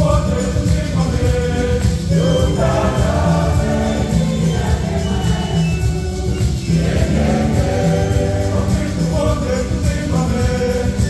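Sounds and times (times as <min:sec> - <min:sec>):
congregation singing a hymn: 0:00.0 - 0:11.0
steady bass accompaniment: 0:00.0 - 0:11.0.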